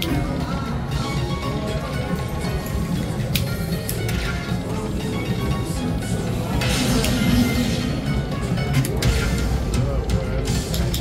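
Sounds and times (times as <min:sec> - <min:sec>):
slot machine game music: 0:00.0 - 0:11.0
slot machine reel-spin sounds: 0:06.3 - 0:09.5.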